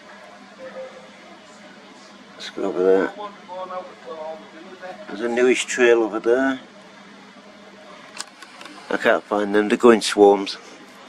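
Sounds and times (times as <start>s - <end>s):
camera handling clicks: 8.1s - 8.8s.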